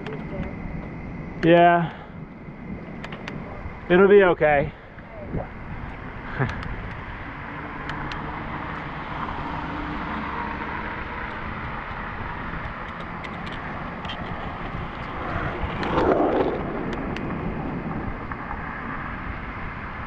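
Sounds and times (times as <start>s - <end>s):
bicycle road noise: 0.0s - 20.0s
wind rush: 0.0s - 20.0s.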